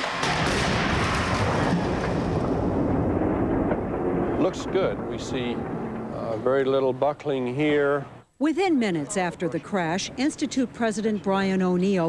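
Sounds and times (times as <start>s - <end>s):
car crash sharp cracks: 0.0s - 6.1s
loud noisy rumble: 0.2s - 7.7s.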